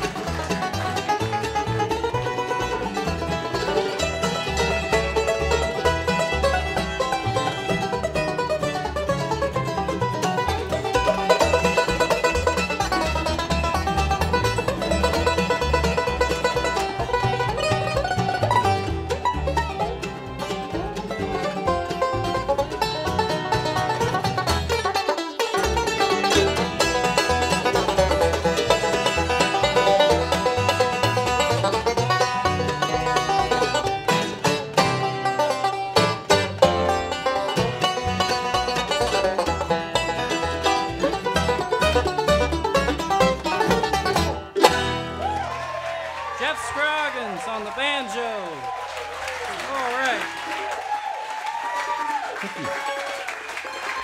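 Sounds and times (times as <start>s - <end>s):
banjo picking: 0.0s - 48.7s, 52.1s - 54.0s
bluegrass band playing: 0.0s - 54.0s.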